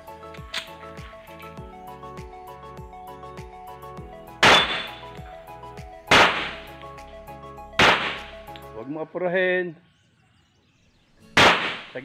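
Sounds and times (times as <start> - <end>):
handgun shot echoing: 4.4 - 5.1, 6.1 - 6.7, 7.8 - 8.6, 11.4 - 12.0.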